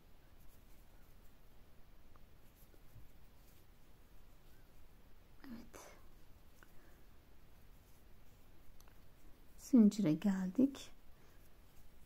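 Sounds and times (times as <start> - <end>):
soft whisper: 2.1 - 12.0.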